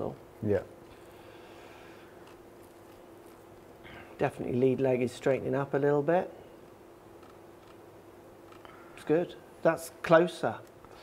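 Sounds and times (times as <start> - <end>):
low constant hum: 0.0 - 11.0.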